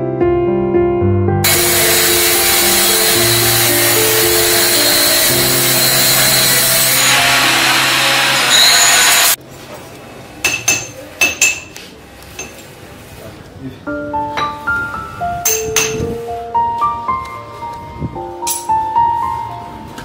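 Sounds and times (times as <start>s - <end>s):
background music: 0.0s - 9.1s, 13.9s - 20.0s
power tool cutting metal: 1.4s - 9.4s.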